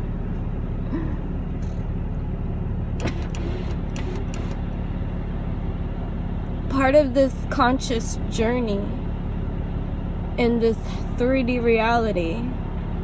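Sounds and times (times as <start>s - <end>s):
car engine hum: 0.0s - 13.0s
road noise inside car: 0.0s - 13.0s.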